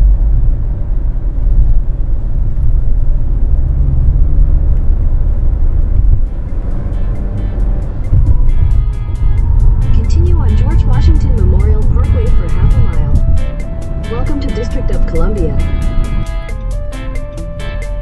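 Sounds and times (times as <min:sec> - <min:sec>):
car road and engine rumble: 0:00.0 - 0:18.0
music with steady beat: 0:06.3 - 0:18.0.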